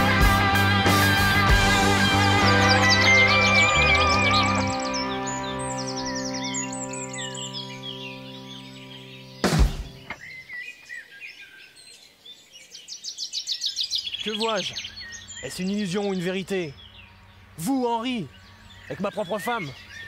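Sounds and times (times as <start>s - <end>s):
sustained music chord: 0.0s - 9.4s
small birds chirping: 1.5s - 20.0s.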